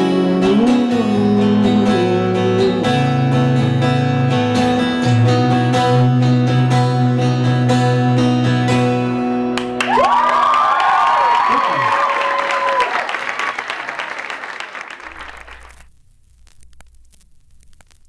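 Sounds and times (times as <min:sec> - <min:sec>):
audience applauding and cheering: 0:09.6 - 0:15.9
whoops: 0:09.7 - 0:15.8.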